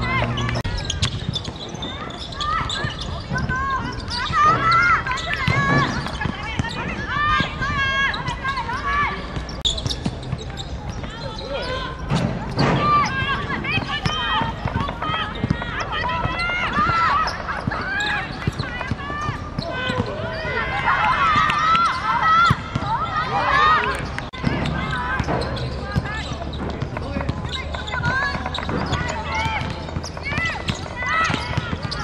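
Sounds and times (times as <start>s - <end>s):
women shouting and calling: 3.3s - 9.3s, 12.8s - 26.3s.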